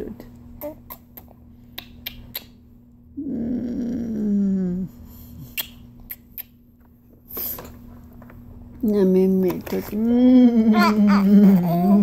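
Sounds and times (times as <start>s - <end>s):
lip-smacking kisses: 0.8s - 2.6s, 5.5s - 6.6s.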